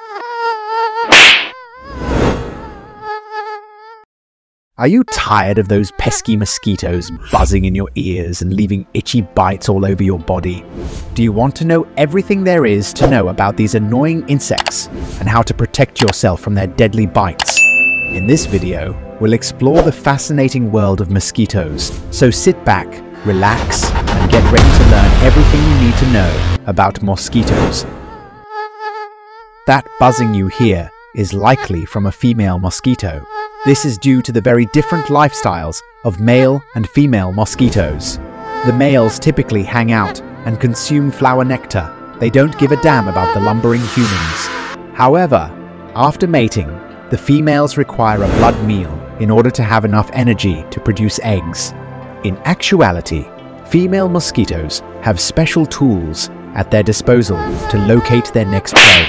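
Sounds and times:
mosquito buzzing: 0:00.0 - 0:04.1, 0:27.3 - 0:44.9, 0:57.3 - 0:59.0
noisy bursts: 0:23.6 - 0:26.6.

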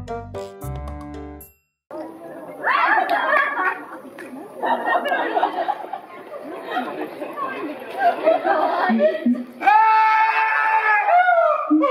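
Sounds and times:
indistinct chatter of voices: 0:01.9 - 0:09.6.

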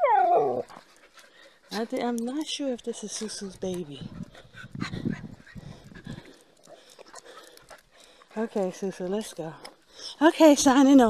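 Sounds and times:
dogs making small sounds: 0:00.0 - 0:09.9.

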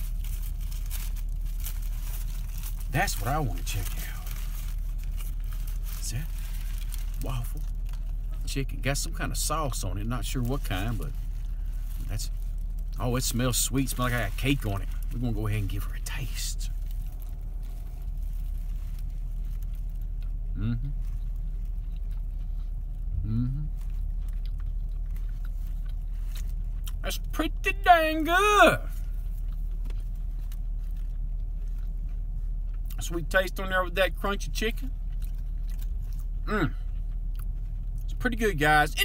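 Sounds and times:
paper wrapper crinkling: 0:00.0 - 0:08.5, 0:10.3 - 0:20.3
faint crackles: 0:00.0 - 0:08.7
steady low hum: 0:00.0 - 0:39.0.

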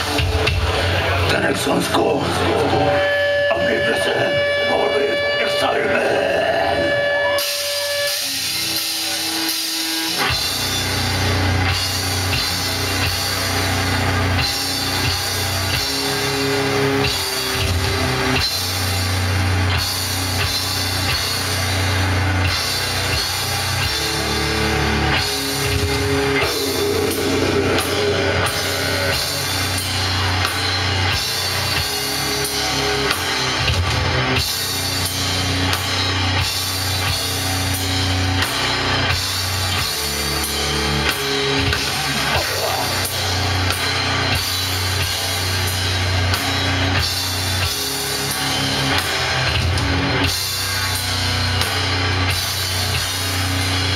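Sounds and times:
distorted electric guitars: 0:00.0 - 0:53.9
drums: 0:00.0 - 0:53.9
metal band playing live: 0:00.0 - 0:53.9.

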